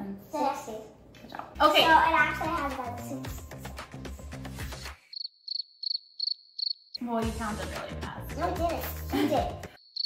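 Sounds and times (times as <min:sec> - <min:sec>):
cricket chirping: 0:05.1 - 0:07.0, 0:09.8 - 0:10.0.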